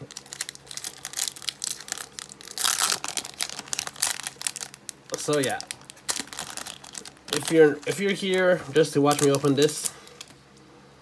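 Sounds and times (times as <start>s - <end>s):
foil wrapper tearing and crackling: 0.1s - 10.4s.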